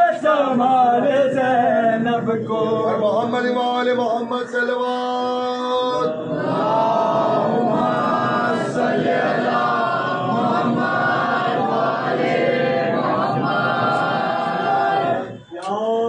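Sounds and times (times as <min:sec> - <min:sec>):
men chanting a lament in unison: 0:00.0 - 0:16.0.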